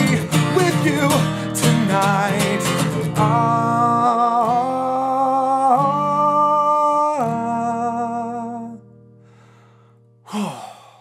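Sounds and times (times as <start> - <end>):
man singing: 0.0 - 8.9
acoustic guitar chord ringing: 0.0 - 10.2
breathy sigh: 9.2 - 11.0.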